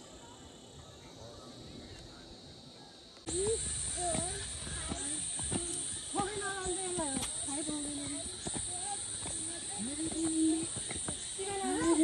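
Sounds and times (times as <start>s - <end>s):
steady high hiss: 0.0s - 12.0s
footsteps on stone steps: 3.3s - 12.0s.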